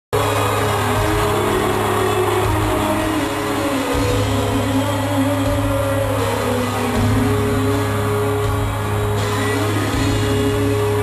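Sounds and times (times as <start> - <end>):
crowd noise: 0.1 - 11.0
live rock band playing: 0.2 - 11.0.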